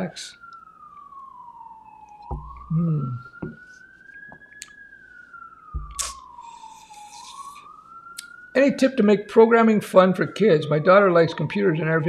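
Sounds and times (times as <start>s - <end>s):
emergency siren wailing: 0.0s - 12.0s
soft thump: 2.3s - 2.8s, 3.4s - 3.6s, 5.7s - 6.0s
short hum of voice: 2.7s - 3.2s.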